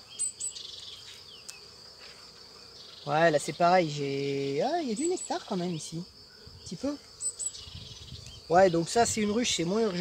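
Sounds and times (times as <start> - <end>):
high continuous chirr: 0.0 - 10.0
honeybees buzzing: 0.0 - 10.0.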